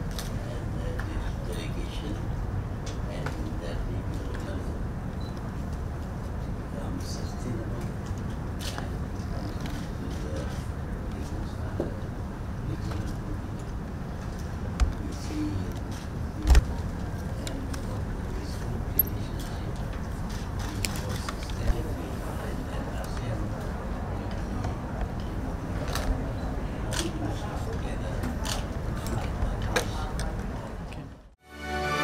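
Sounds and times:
low room hum: 0.0 - 31.4
faint murmur of voices: 6.3 - 31.4.

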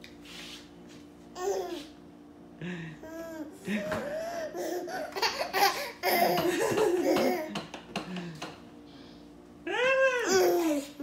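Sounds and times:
baby laughing: 3.8 - 7.6.

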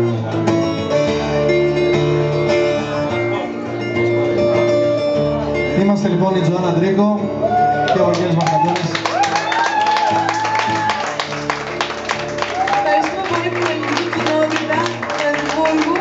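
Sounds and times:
acoustic guitar playing chords: 0.0 - 16.0.

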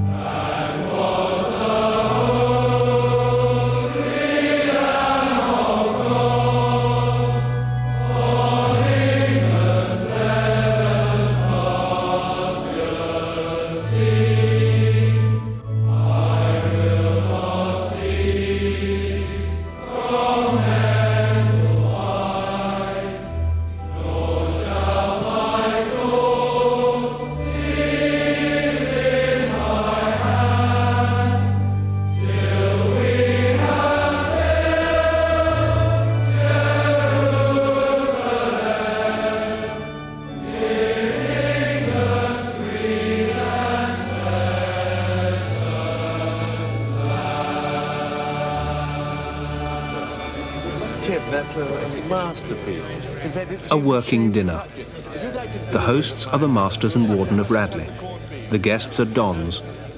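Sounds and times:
choir singing: 0.0 - 59.9.

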